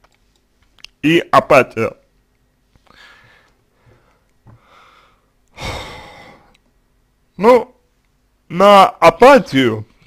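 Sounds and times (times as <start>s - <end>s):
man sighing: 2.9s - 6.6s.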